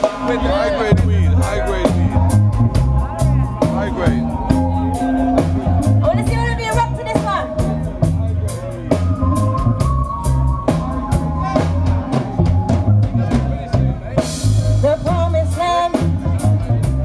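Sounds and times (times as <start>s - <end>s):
reggae band playing: 0.0s - 17.0s.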